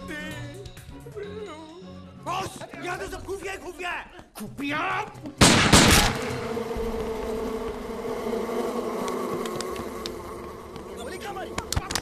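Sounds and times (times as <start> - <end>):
bees buzzing: 5.6 - 12.0.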